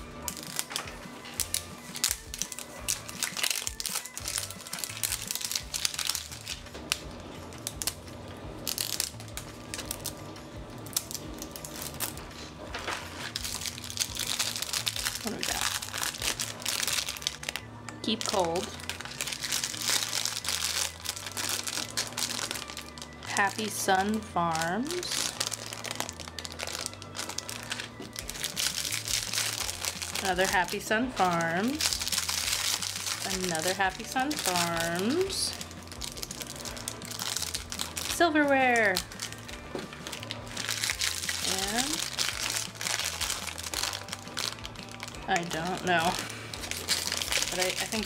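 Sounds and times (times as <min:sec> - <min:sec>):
plastic wrappers crinkling: 0:00.0 - 0:48.0.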